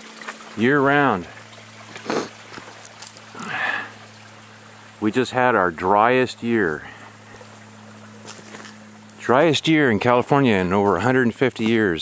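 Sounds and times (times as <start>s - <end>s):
small stream trickling over rocks: 0.0s - 12.0s.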